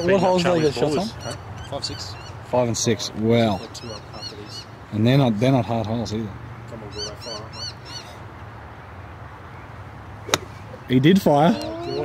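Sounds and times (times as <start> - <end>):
bird calling: 0.0 - 2.5, 3.4 - 4.8, 6.8 - 8.2, 9.5 - 12.0
golf club striking ball: 10.2 - 10.8.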